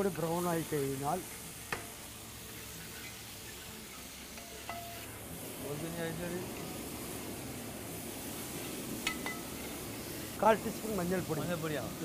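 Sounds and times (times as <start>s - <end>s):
food sizzling: 0.0s - 12.0s.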